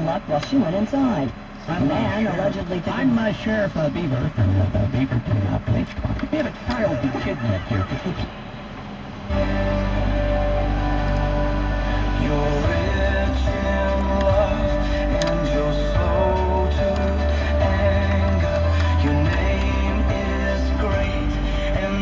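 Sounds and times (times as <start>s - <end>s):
car stereo music with strong bass: 0.0s - 22.0s.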